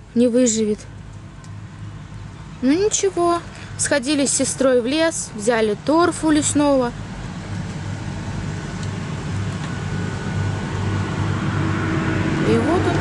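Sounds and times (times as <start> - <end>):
road traffic hum: 0.0 - 13.0.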